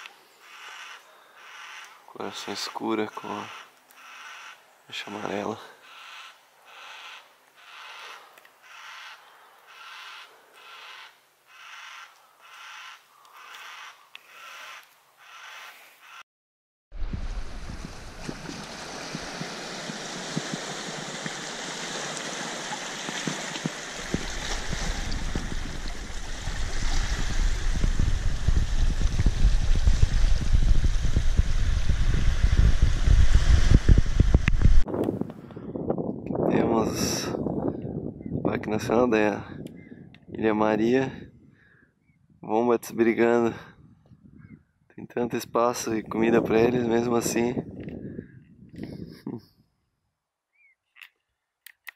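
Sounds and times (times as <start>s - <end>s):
cockatoo calling: 0.0s - 2.0s, 3.1s - 4.6s, 5.8s - 16.2s
wind and sea on rocky shore: 17.0s - 40.4s.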